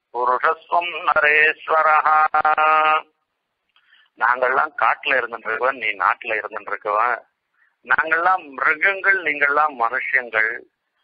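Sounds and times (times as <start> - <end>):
man chanting: 0.1 - 3.2, 4.2 - 10.7.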